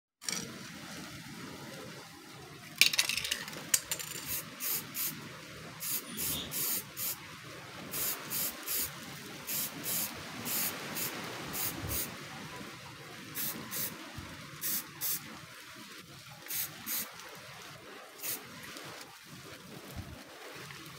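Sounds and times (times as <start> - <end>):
spray can hissing bursts: 4.2 - 5.2, 5.8 - 7.2, 7.9 - 8.9, 9.5 - 12.1, 13.4 - 13.9, 14.6 - 15.2, 16.5 - 17.1.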